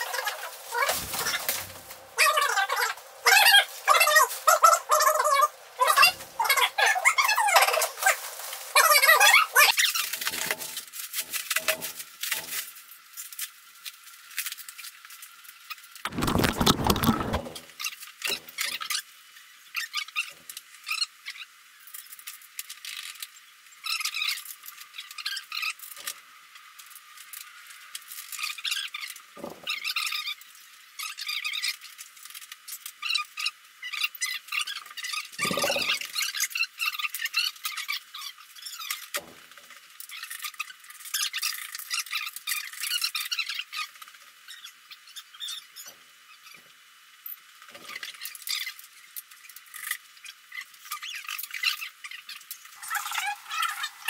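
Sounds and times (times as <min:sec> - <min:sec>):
hardware squeaks and scrapes: 0:00.0 - 0:12.6, 0:35.0 - 0:36.5.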